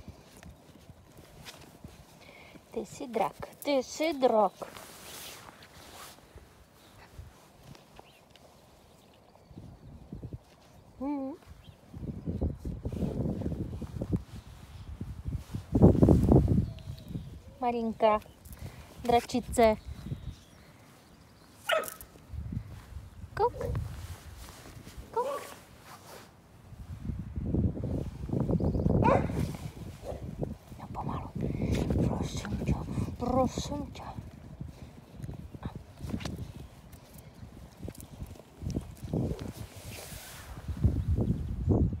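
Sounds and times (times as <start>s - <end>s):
puppies scuffling on grass: 0.0s - 9.2s, 11.8s - 27.2s
fabric rustle: 4.0s - 7.9s, 23.6s - 27.4s, 39.3s - 40.9s
puppy yip: 21.6s - 22.1s, 29.0s - 29.4s.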